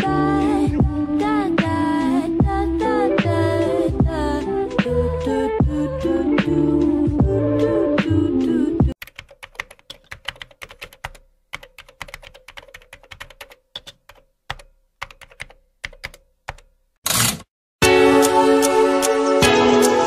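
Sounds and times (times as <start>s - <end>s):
computer keyboard typing: 9.0s - 17.2s
song playing: 17.8s - 20.0s.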